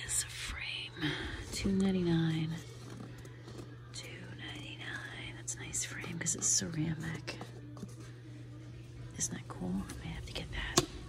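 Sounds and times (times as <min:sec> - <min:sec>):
steady low hum: 0:00.0 - 0:11.0
woman speaking quietly: 0:03.9 - 0:07.8, 0:08.4 - 0:10.9.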